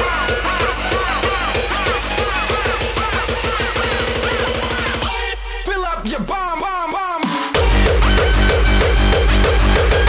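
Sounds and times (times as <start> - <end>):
hardcore techno track: 0.0 - 10.0.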